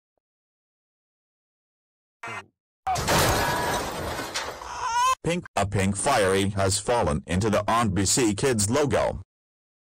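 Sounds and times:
glass shattering sound effect: 2.9 - 4.7.

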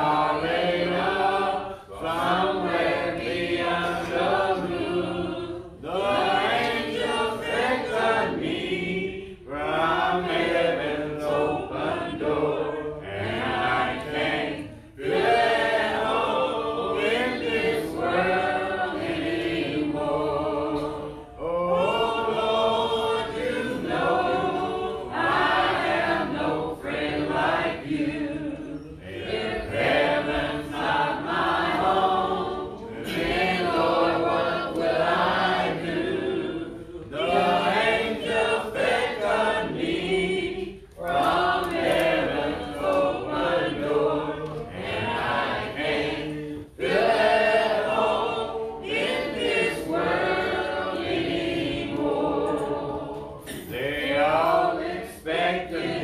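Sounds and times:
congregation singing a hymn: 0.0 - 56.0.

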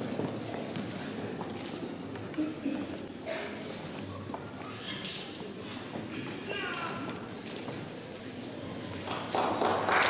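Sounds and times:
murmuring voices in hall: 0.0 - 10.0.

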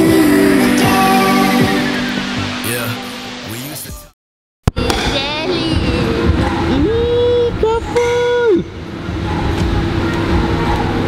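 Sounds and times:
loud background noise: 0.0 - 4.1, 4.7 - 11.0
person's voice: 2.6 - 4.1.

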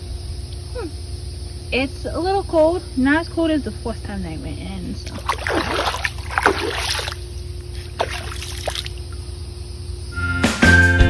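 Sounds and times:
steady low hum: 0.0 - 10.2
foot swishing in pool water: 5.0 - 9.1
small water splashes: 5.0 - 9.2.

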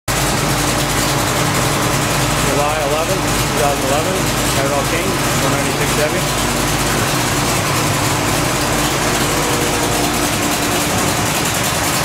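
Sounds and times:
engine idling: 0.1 - 12.0.

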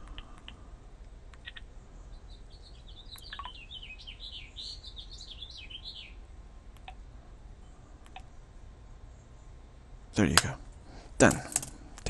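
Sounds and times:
small bird warbling song: 1.4 - 6.3.

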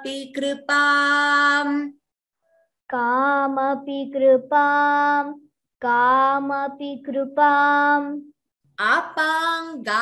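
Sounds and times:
girl chanting a verse: 0.0 - 2.0.

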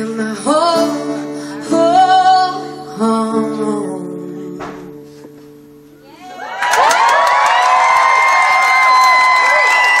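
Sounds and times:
audience cheering and whooping: 6.1 - 10.0.

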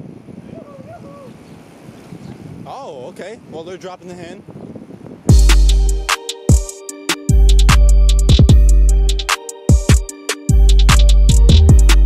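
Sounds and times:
wind rushing over microphone: 0.0 - 5.5
person calling out: 0.5 - 1.4.

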